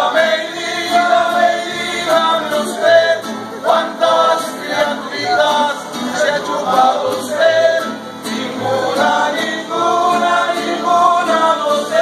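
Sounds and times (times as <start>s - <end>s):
mariachi band playing: 0.0s - 12.0s
men singing together: 0.0s - 12.0s.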